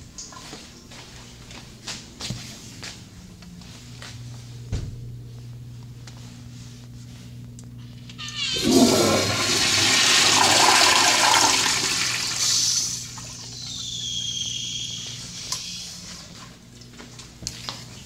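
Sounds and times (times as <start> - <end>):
toilet flushing: 8.4 - 15.0
high whistle of water flow: 12.3 - 16.0.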